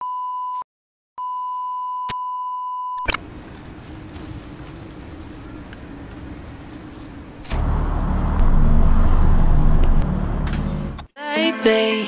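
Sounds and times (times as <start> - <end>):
steady hiss with low hum: 3.1 - 7.5.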